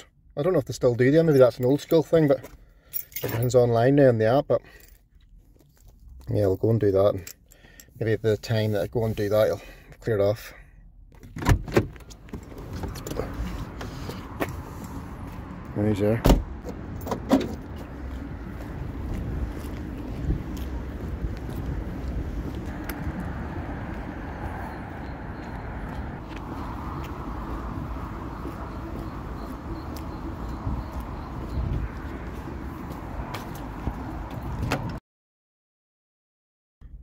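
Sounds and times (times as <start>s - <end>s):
road traffic: 0.0s - 35.0s.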